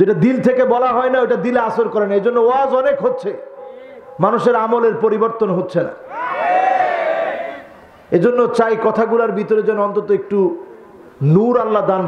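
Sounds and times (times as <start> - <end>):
audience calling out together: 6.1 - 7.7.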